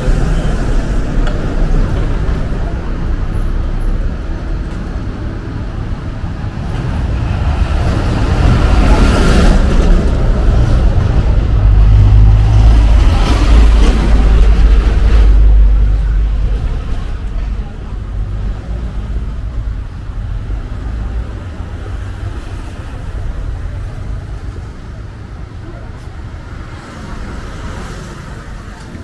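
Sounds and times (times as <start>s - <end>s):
motor vehicles passing: 0.0s - 29.0s.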